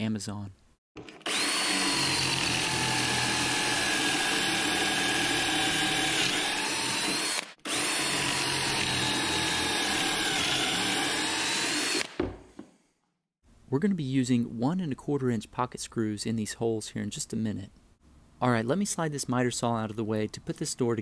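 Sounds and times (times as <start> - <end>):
cordless drill whining: 1.0 - 12.3.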